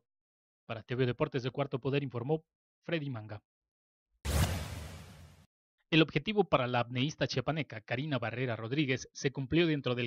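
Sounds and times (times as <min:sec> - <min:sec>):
transition whoosh: 0:04.3 - 0:05.5.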